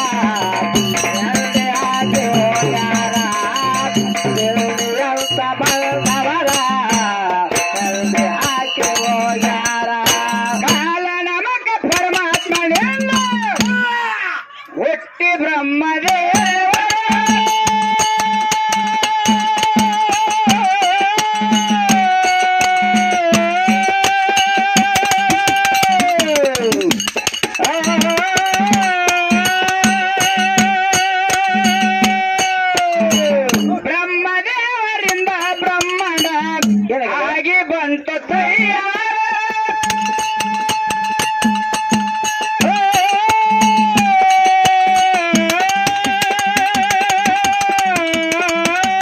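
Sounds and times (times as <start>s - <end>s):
held melody line: 0.0s - 11.2s, 16.1s - 34.2s, 38.4s - 49.0s
small hand cymbals striking: 0.0s - 11.2s, 11.9s - 14.0s, 16.0s - 34.0s, 35.0s - 36.9s, 39.4s - 49.0s
steady drum beat: 0.0s - 11.2s, 11.8s - 14.1s, 16.0s - 34.0s, 35.0s - 37.0s, 38.3s - 49.0s.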